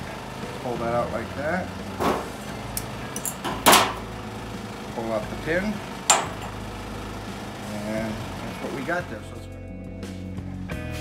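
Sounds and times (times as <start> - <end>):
pliers clattering on metal workbench: 2.0 - 4.1, 6.1 - 6.7
circlip clinking into metal tray: 2.8 - 4.0.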